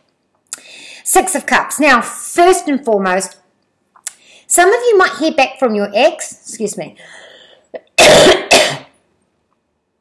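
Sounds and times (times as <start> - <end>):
woman coughing: 7.8 - 9.0.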